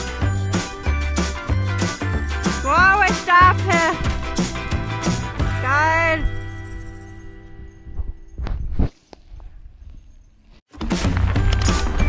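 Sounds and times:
background music track: 0:00.0 - 0:06.3
bike trail bumps rumbling: 0:00.0 - 0:10.2.

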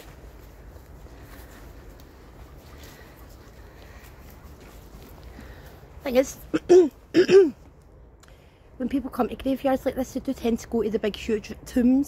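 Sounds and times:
footsteps on grass: 0:00.0 - 0:06.4.

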